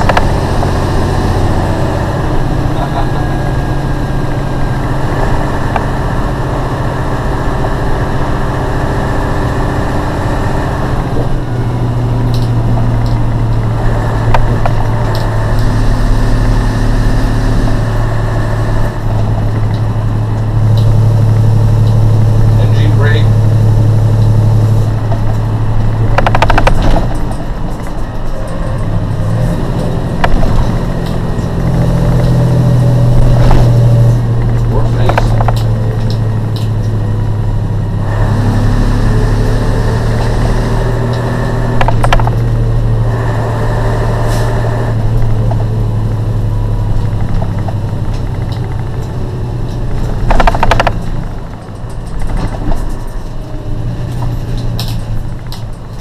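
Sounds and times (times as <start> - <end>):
diesel truck engine: 0.0 - 56.0
road noise: 0.0 - 56.0
rattles and knocks: 11.0 - 37.8, 40.0 - 43.0, 44.2 - 56.0.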